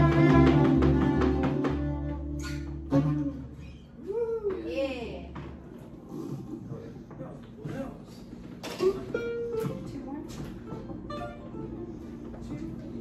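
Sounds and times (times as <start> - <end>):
plucked guitar notes: 0.0 - 3.6, 8.8 - 12.2.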